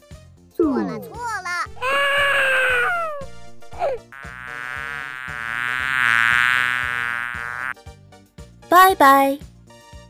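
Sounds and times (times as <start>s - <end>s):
cartoon insect buzzing: 1.7s - 7.7s.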